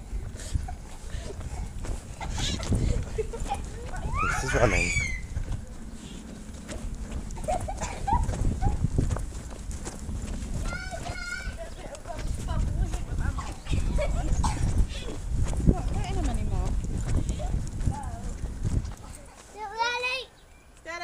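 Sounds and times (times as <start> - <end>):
low rumble: 0.0 - 19.1
footsteps running: 0.0 - 19.6
children calling out: 3.4 - 5.5, 10.6 - 12.3
high-pitched shriek: 4.3 - 5.4.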